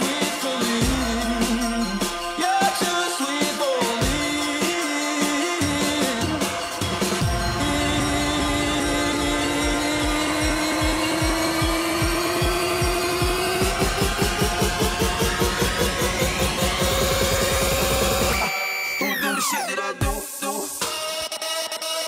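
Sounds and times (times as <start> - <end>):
steady kick beat: 0.7 - 3.0, 5.4 - 18.4
rising sweep: 7.0 - 19.7
rising synth tone: 7.1 - 19.8.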